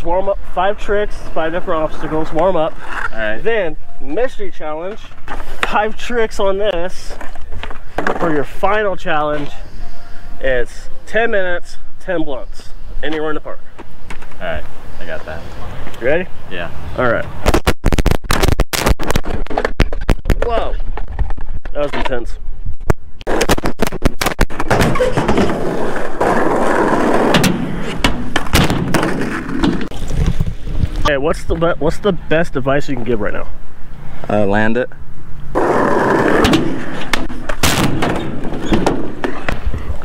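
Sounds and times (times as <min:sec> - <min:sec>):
crackling microphone distortion: 0:00.0 - 0:40.0
skateboard riding a ramp: 0:24.5 - 0:30.4, 0:35.6 - 0:39.6.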